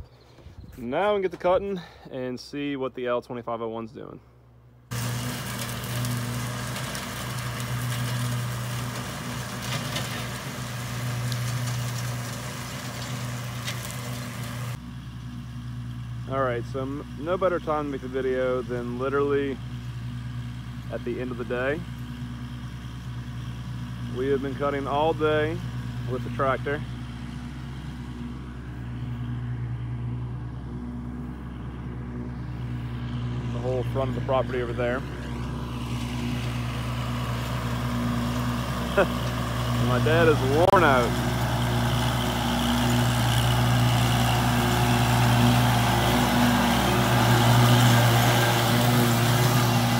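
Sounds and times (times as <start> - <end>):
tractor diesel engine running: 4.6 - 49.9.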